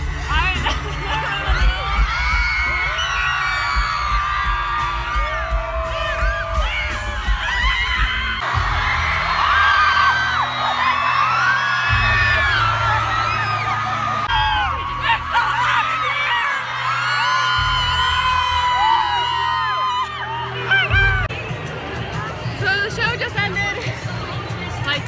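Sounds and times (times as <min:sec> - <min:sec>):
heavy bass of live concert music: 0:00.0 - 0:25.0
crowd singing and whooping: 0:00.6 - 0:21.3.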